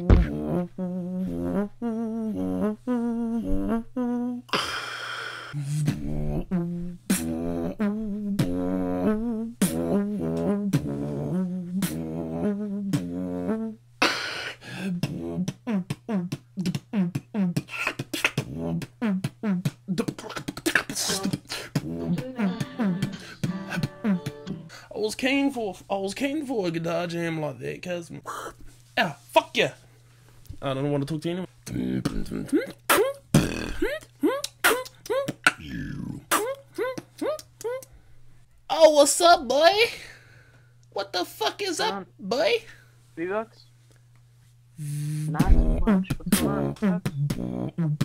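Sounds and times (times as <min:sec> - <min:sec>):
beatboxer humming melody: 0:00.0 - 0:24.9, 0:31.6 - 0:37.9, 0:44.7 - 0:48.0
hissing breath: 0:04.5 - 0:06.0, 0:14.0 - 0:14.9
person laughing: 0:20.9 - 0:24.7
hummed notes sliding downward: 0:21.9 - 0:24.7.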